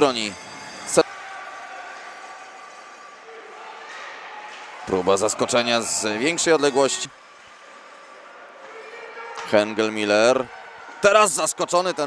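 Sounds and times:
ice rink hall murmur: 0.0 - 12.0.

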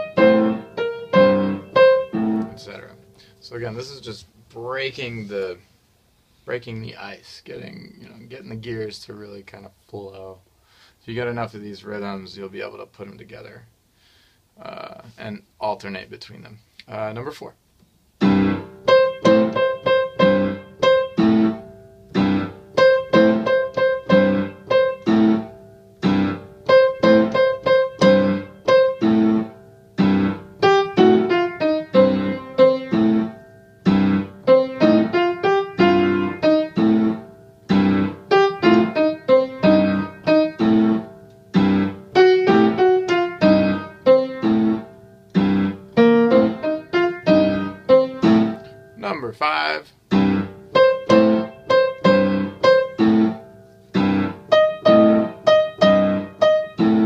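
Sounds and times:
piano playing blues chords: 0.0 - 4.0, 18.2 - 57.0.

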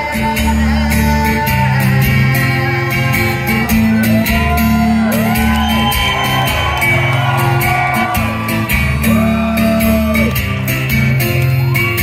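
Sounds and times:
amplified acoustic guitar: 0.0 - 12.0
audience whooping and shouting: 3.2 - 12.0.

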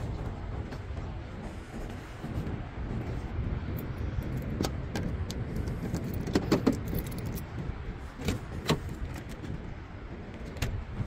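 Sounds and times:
steady low rumble: 0.0 - 11.0
keys jangling: 5.8 - 7.5.

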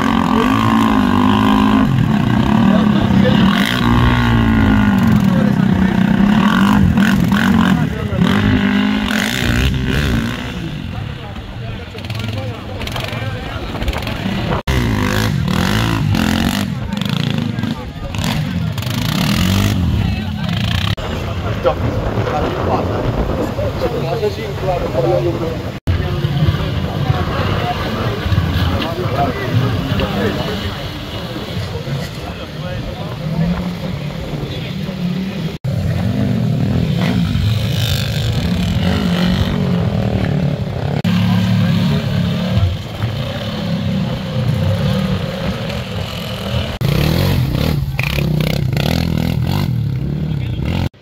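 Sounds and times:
engines revving unevenly: 0.0 - 51.0.

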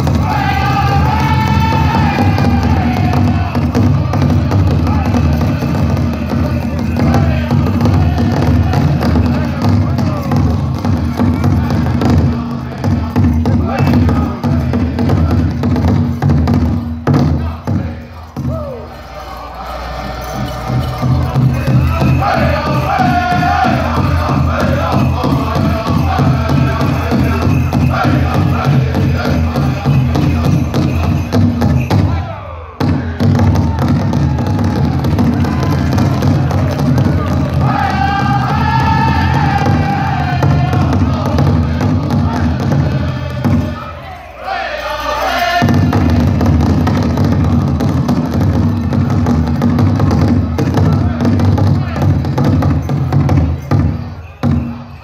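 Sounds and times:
high wavering group singing: 0.0 - 33.2, 34.8 - 49.1
big drum beaten steadily: 0.0 - 44.0, 45.3 - 55.0.

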